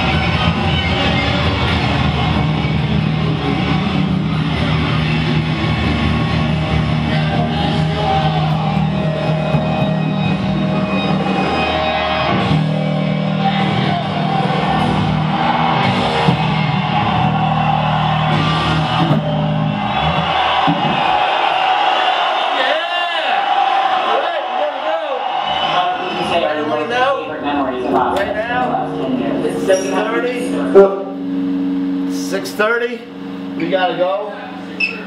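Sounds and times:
electric bass guitar: 0.0 - 21.4, 26.8 - 33.8.

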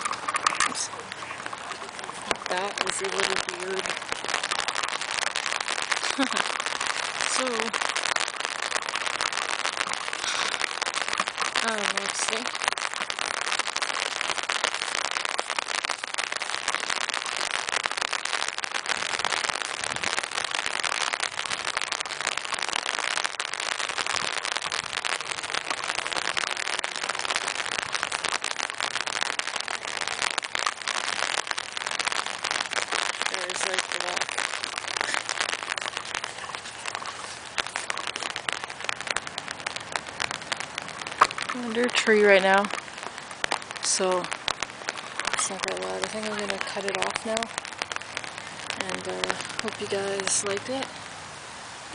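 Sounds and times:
rain on an umbrella: 0.0 - 51.9.

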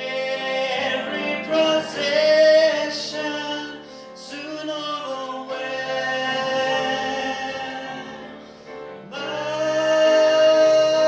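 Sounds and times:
vocal duet with piano: 0.0 - 11.0.

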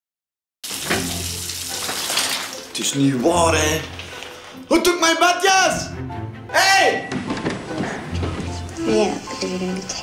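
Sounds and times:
shower spray running: 0.6 - 2.8.

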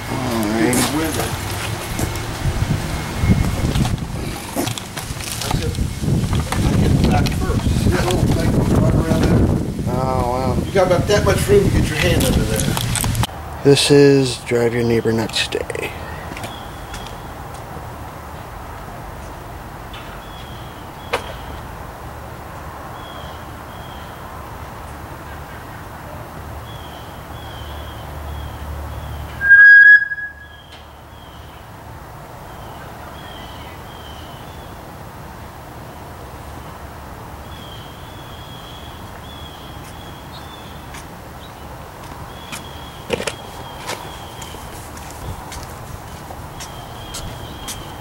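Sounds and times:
shrill bullhorn tone: 29.4 - 30.7
faint high chirps: 29.4 - 30.8.

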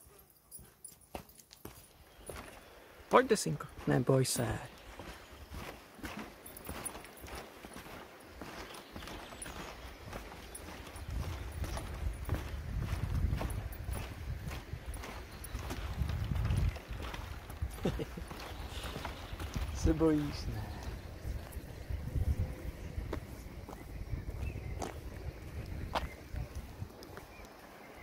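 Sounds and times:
footsteps on wooden planks: 0.0 - 3.0, 3.6 - 28.0.

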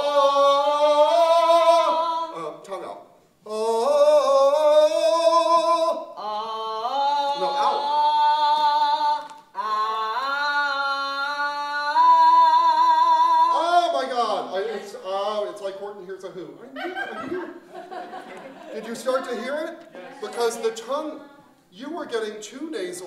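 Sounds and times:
young man singing unaccompanied: 0.0 - 2.7, 3.4 - 14.8.

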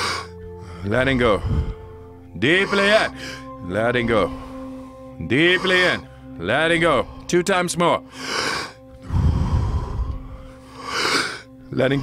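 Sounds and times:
deep forceful breathing: 0.0 - 7.3, 8.0 - 11.7
soft music drone: 0.0 - 12.0.

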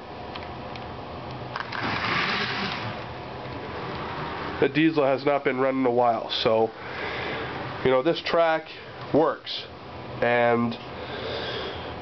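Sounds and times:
model train motor humming: 1.6 - 3.0.

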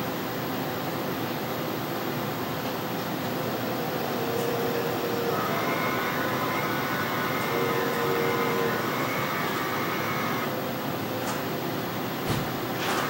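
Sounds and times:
whooshing machine noise: 3.0 - 13.0
faint whining tones: 3.3 - 11.4.

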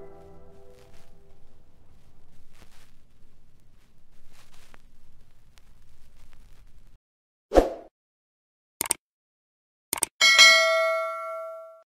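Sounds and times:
bell ding: 10.2 - 11.8.

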